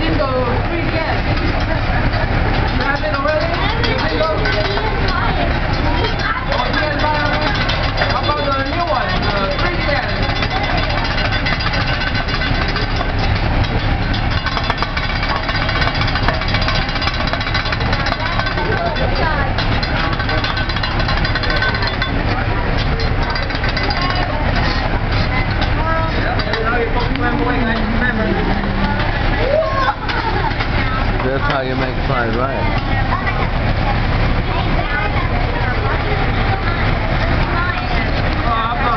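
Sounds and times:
loud din of voices: 0:00.0 - 0:38.9
metal spatulas scraping griddle: 0:02.5 - 0:29.2.

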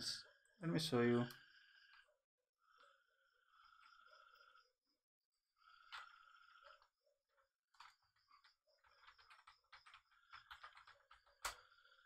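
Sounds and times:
typing on computer keyboard: 0:07.7 - 0:11.6.

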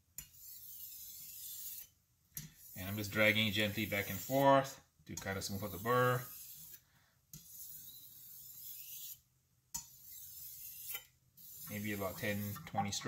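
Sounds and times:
knife scraping on whetstone: 0:00.2 - 0:04.6, 0:05.2 - 0:06.8, 0:07.4 - 0:09.2, 0:09.8 - 0:13.0.

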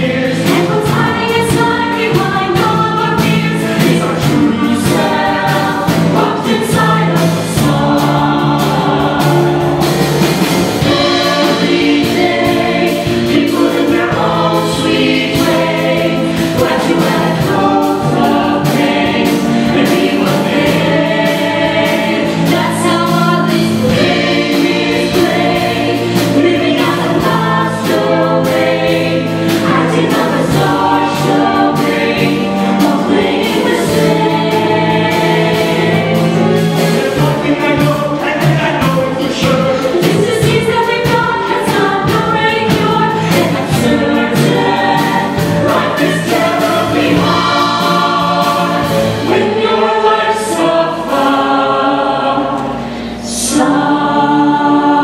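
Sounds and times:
choir singing in harmony: 0:00.0 - 0:55.0
instrumental accompaniment with beat: 0:00.0 - 0:55.0.

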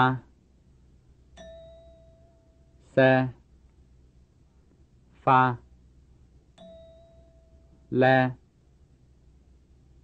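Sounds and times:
spoken syllable: 0:00.0 - 0:00.3, 0:05.2 - 0:05.6
mid-pitched cue beep: 0:06.6 - 0:07.9.

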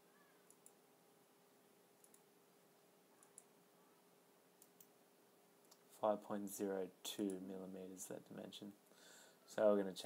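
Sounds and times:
faint steady hum: 0:00.0 - 0:10.0
computer mouse clicks: 0:00.4 - 0:00.8, 0:02.0 - 0:02.3, 0:03.2 - 0:03.5, 0:04.6 - 0:05.0.

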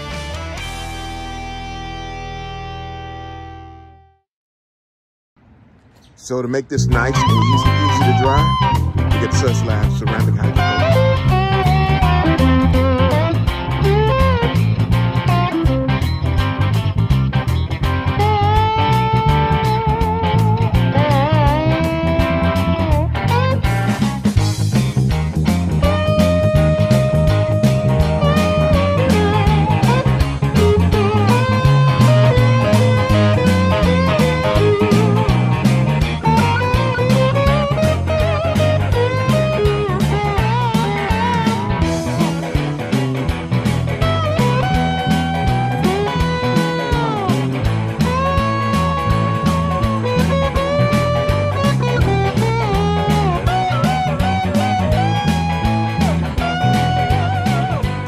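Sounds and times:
electric guitar over steady beat: 0:00.0 - 0:03.9, 0:06.7 - 0:58.0.

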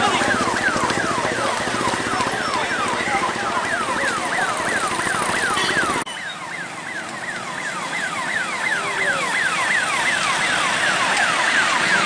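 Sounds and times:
motorcycle engines: 0:00.0 - 0:12.0
police siren yelp: 0:00.0 - 0:12.0
road traffic noise: 0:00.0 - 0:12.0.

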